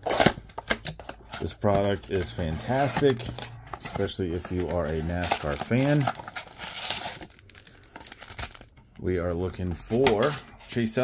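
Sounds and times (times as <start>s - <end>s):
card packs crinkling and rustling: 0.0s - 11.0s.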